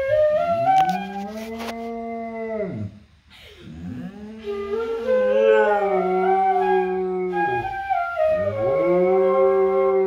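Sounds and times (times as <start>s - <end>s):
flute playing: 0.0s - 1.7s, 4.4s - 10.0s
dog howling: 3.9s - 10.0s.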